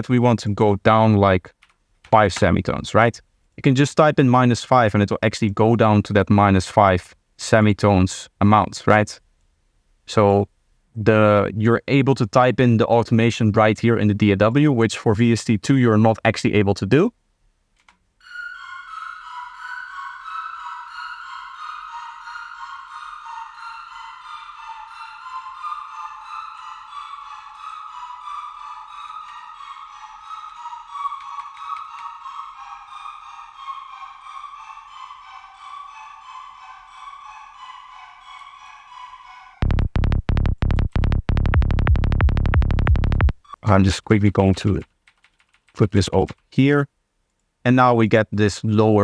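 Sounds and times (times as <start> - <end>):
synth lead fast repeated notes: 18.2 - 43.6
fast-pulsing electronic bassline: 39.6 - 43.6.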